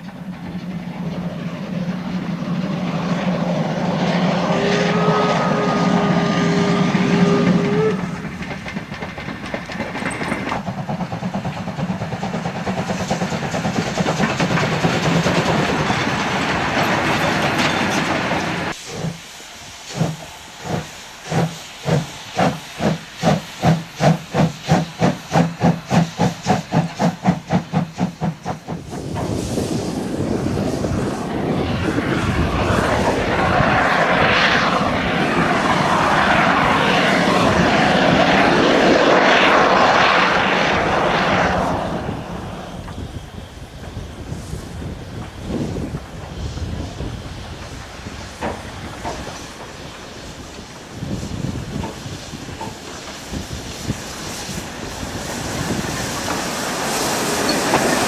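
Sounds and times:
loud steam hissing: 0.0 - 58.0
steam whistle blowing: 4.2 - 8.3.

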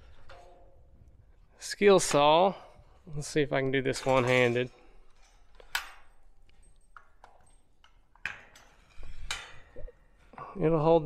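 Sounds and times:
clatter on wire shelf: 3.8 - 6.0.

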